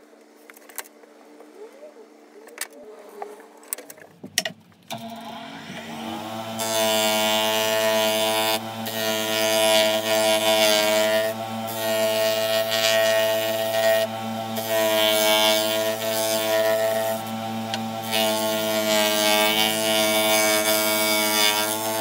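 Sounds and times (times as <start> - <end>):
disc sander motor humming: 4.9 - 22.0
wood rasping on sanding disc: 5.6 - 22.0.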